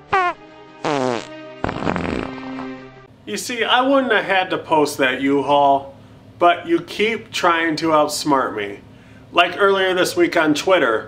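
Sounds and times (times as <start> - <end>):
comic fart sound effects: 0.0 - 3.0.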